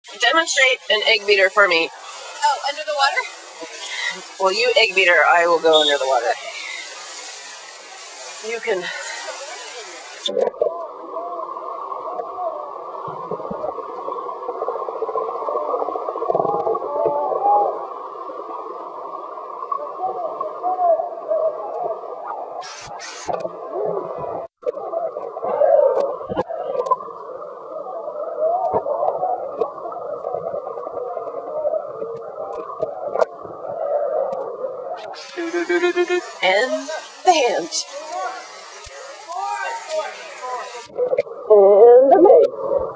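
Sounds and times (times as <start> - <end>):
muffled underwater wash: 0.1 - 42.9.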